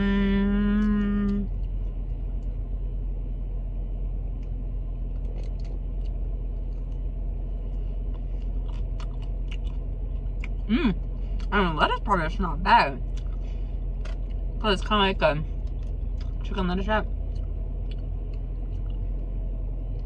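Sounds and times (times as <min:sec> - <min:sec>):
person humming mmm: 0:00.0 - 0:01.6, 0:10.6 - 0:11.0
low car rumble: 0:00.0 - 0:20.0
person chewing food: 0:05.1 - 0:11.5, 0:13.0 - 0:14.5, 0:15.5 - 0:16.4, 0:17.1 - 0:19.3.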